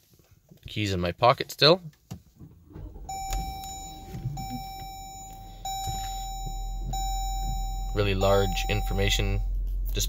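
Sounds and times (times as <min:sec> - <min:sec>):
car engine starting and idling: 0:02.2 - 0:10.0
dashboard chime tone: 0:03.1 - 0:10.0.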